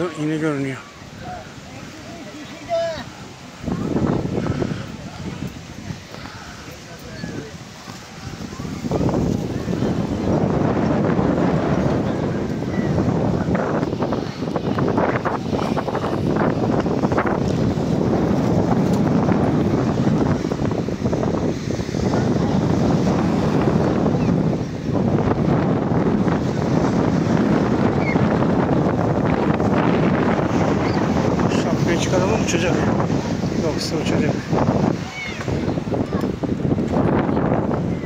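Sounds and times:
wind on microphone: 0:00.0 - 0:38.0.

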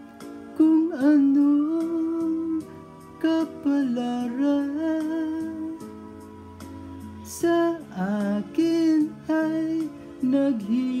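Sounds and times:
karaoke backing music: 0:00.0 - 0:11.0.

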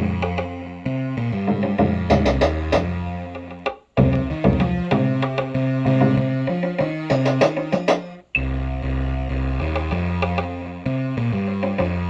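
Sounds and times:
held bass note with chord: 0:08.4 - 0:12.0.

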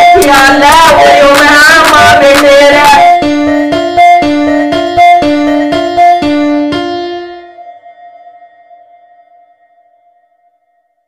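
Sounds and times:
keyboard chord ringing out: 0:02.8 - 0:09.4.

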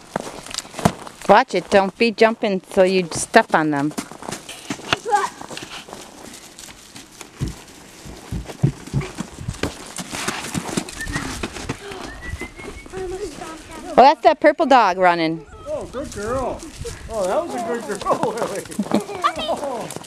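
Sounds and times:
footsteps crunching on snow: 0:00.0 - 0:14.1, 0:15.7 - 0:20.0.

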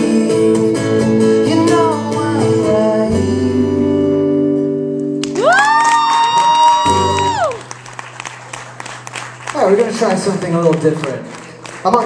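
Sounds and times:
audience applause and cheering: 0:05.2 - 0:12.0.

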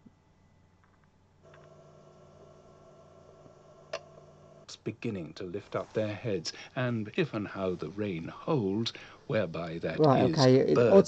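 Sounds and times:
faint steady speaker hum: 0:00.0 - 0:11.0.

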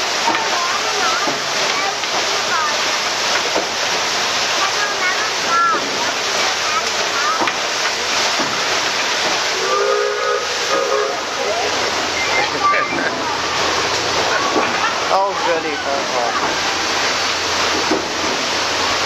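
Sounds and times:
churning water: 0:00.0 - 0:19.0
faint voices: 0:00.0 - 0:19.0
rushing hiss of steam: 0:00.0 - 0:19.0.

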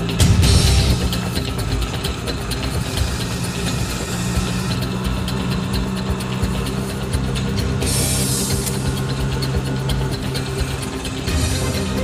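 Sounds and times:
auto rickshaw engine running: 0:00.0 - 0:12.0.

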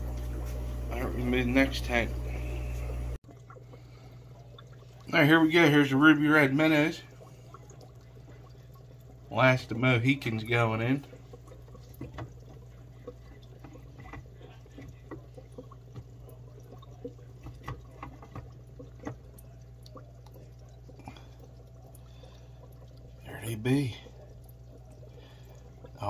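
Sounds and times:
constant low hum: 0:00.0 - 0:26.0
water trickling and bubbling: 0:00.0 - 0:26.0
small ticks and drips: 0:03.1 - 0:26.0.

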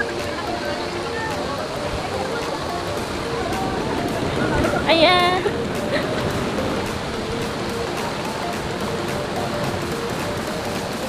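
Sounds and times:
quiet background music: 0:00.0 - 0:11.0
stream and waterfall rushing: 0:00.0 - 0:11.0.

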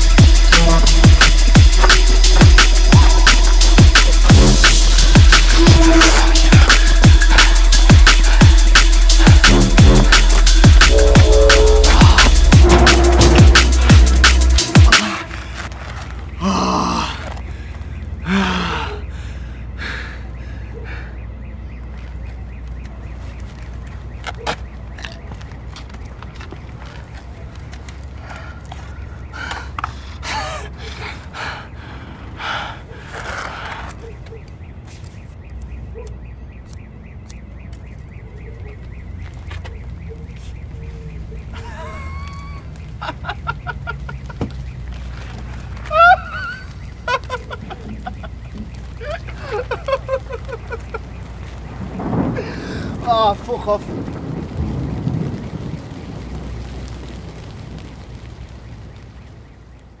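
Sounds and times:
low rumble: 0:00.0 - 0:15.7
steady rain: 0:00.0 - 0:19.8, 0:21.8 - 0:32.4, 0:38.0 - 1:00.0
man breathing heavily: 0:00.0 - 0:21.3, 0:28.1 - 0:34.0, 0:52.4 - 0:53.0.

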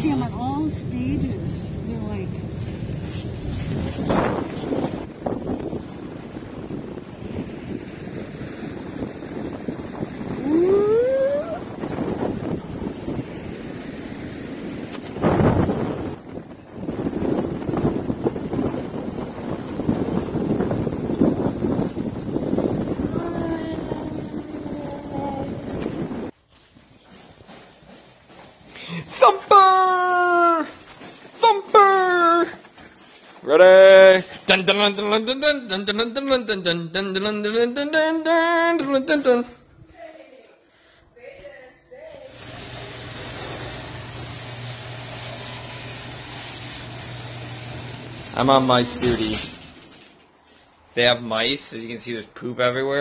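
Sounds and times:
wind buffeting microphone: 0:00.0 - 0:26.5.

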